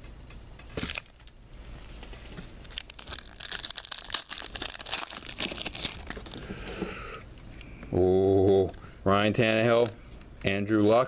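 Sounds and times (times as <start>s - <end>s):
foil wrapper tearing and crinkling: 2.6s - 6.4s.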